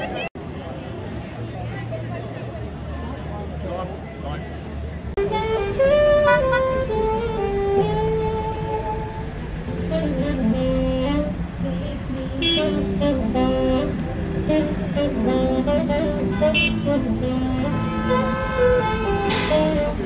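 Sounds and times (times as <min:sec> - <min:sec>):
idling traffic rumble: 0:00.0 - 0:20.0
slow street music melody: 0:05.2 - 0:20.0
car horn toots: 0:12.4 - 0:13.8, 0:14.5 - 0:20.0
brief hiss: 0:19.3 - 0:19.8.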